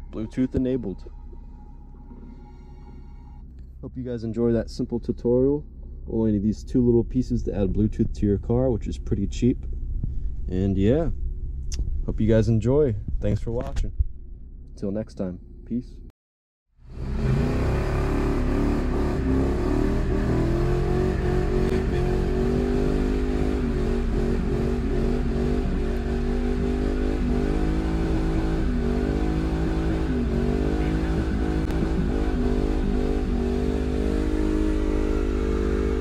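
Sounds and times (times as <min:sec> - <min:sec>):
car engine revving high: 0:16.9 - 0:36.0.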